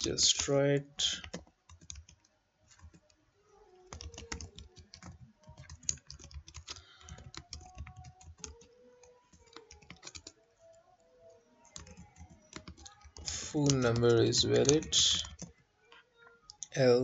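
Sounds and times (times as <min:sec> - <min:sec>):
computer keyboard typing: 0:01.1 - 0:03.1, 0:03.8 - 0:10.8, 0:11.6 - 0:15.6, 0:16.5 - 0:16.8.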